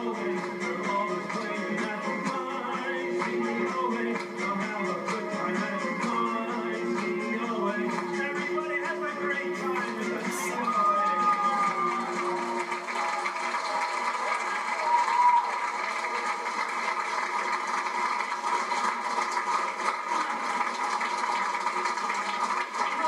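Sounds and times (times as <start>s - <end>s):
audience applauding: 0.0s - 23.0s
faint voices in crowd: 8.4s - 23.0s.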